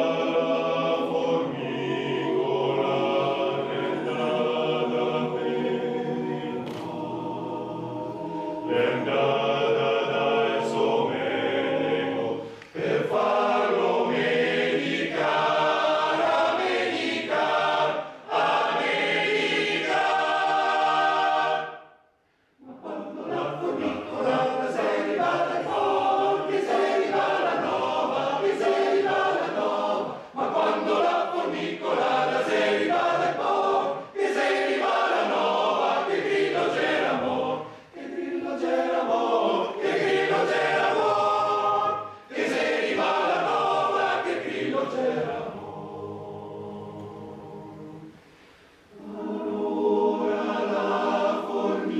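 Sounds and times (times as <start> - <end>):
male choir singing a cappella: 0.0 - 22.0, 22.6 - 48.3, 48.9 - 51.9.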